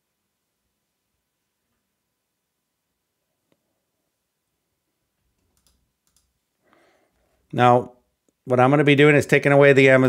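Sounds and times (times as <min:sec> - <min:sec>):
faint computer mouse clicks: 0:05.4 - 0:06.3
faint breath: 0:06.6 - 0:07.5.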